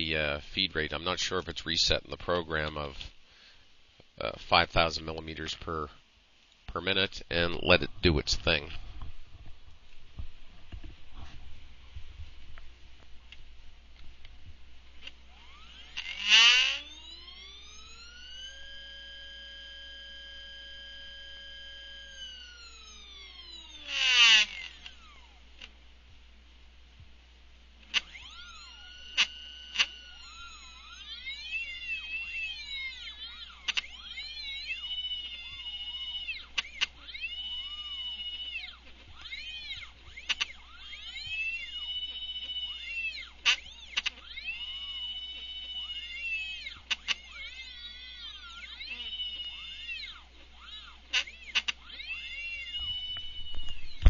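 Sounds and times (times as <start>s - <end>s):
stepper motors whining: 15.0s - 25.7s, 27.7s - 54.0s.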